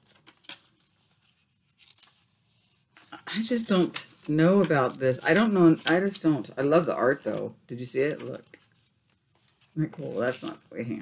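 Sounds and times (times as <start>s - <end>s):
rustle of old paper: 0.0s - 3.0s, 7.2s - 11.0s.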